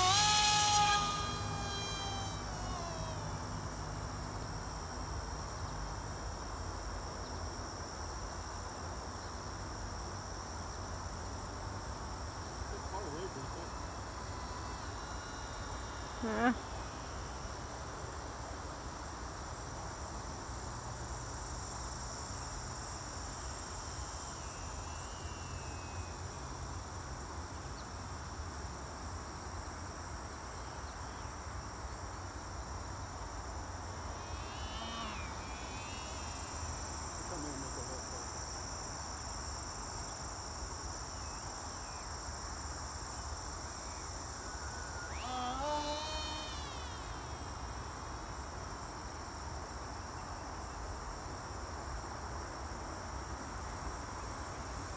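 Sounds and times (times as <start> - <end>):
model plane motor whine passing: 0.0 - 4.1, 14.0 - 17.2, 34.0 - 37.5, 44.4 - 48.1
crickets chirring: 0.0 - 54.9.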